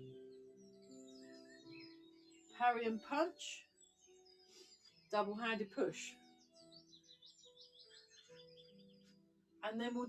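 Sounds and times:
background music low notes: 0:00.0 - 0:10.0.

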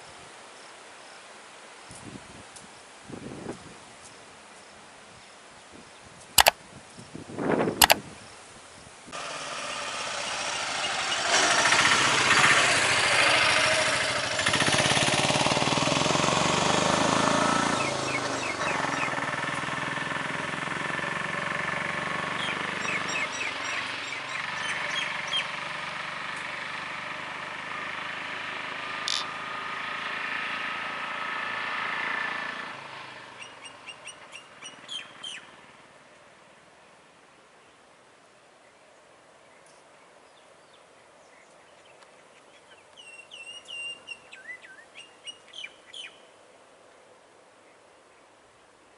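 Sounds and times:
birds chirping: 0:17.6 - 0:19.4, 0:22.4 - 0:25.6, 0:29.0 - 0:29.4, 0:33.4 - 0:35.6, 0:39.5 - 0:46.3.

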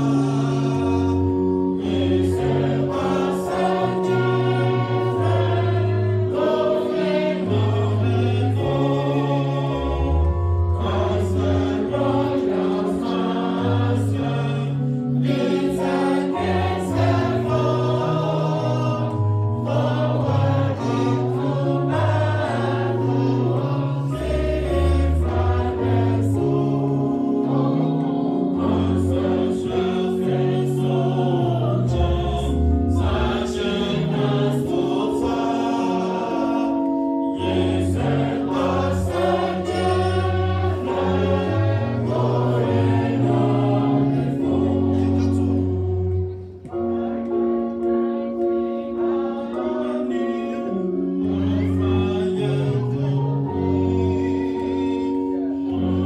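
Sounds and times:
choir and congregation singing hymn: 0:00.0 - 0:56.0.

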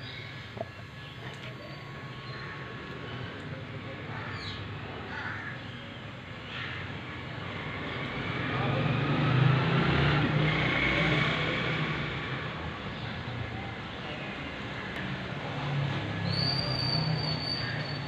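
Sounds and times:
motor vehicle passing: 0:06.6 - 0:13.4.

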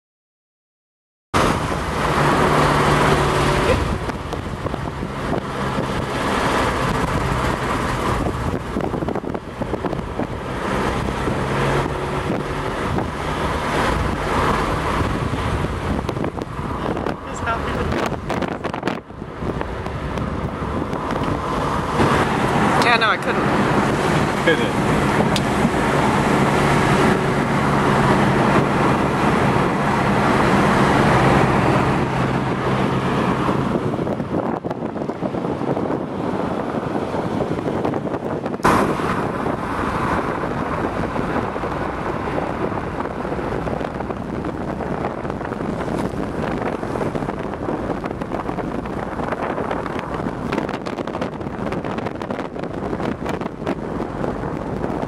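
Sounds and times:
car engine hum: 0:01.4 - 0:55.0
road and wind noise: 0:01.4 - 0:55.0.

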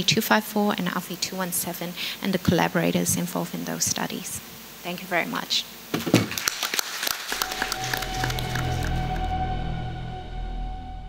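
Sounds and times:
audience applause: 0:06.3 - 0:09.7
closing music with low bass: 0:07.4 - 0:11.0.

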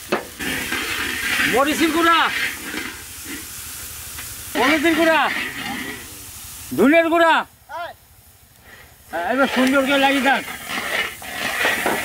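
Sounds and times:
spices sizzling in hot oil: 0:00.0 - 0:12.0.

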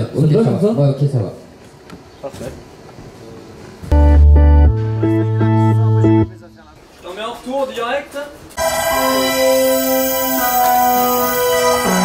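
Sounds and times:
amplified instrument deep held note: 0:03.9 - 0:06.4.

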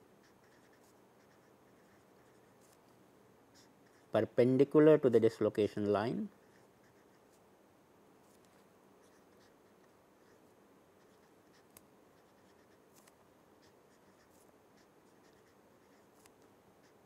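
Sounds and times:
marker writing on paper: 0:00.2 - 0:02.8, 0:03.6 - 0:04.1, 0:06.3 - 0:07.4, 0:08.4 - 0:10.4, 0:11.0 - 0:17.0.

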